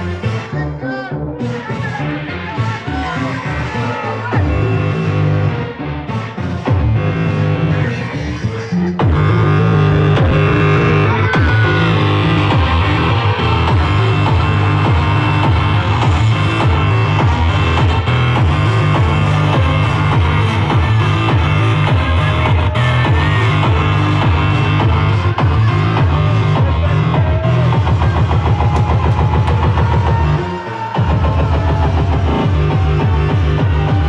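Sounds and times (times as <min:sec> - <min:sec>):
loud electronic club music: 0:00.0 - 0:34.0.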